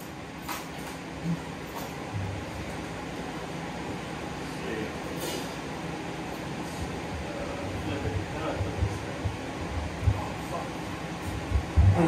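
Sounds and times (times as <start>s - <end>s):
band room amplifier rumble: 6.7s - 12.0s
soft low thuds: 11.3s - 12.0s.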